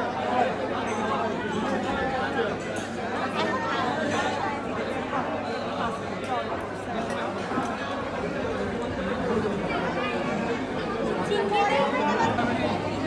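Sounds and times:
babble of many voices: 0.0 - 13.0.

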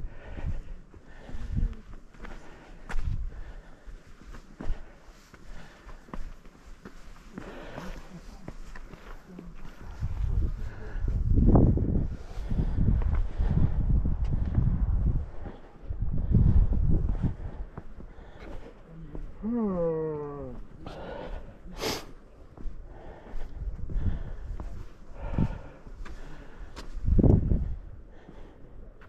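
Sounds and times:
wind buffeting microphone: 9.7 - 18.5, 22.6 - 28.6.

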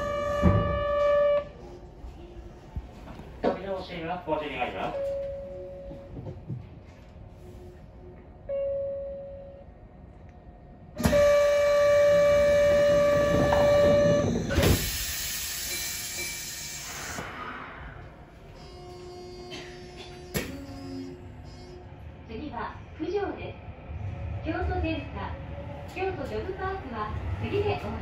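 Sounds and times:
train running hum: 0.0 - 28.0
short tone: 18.5 - 21.9.

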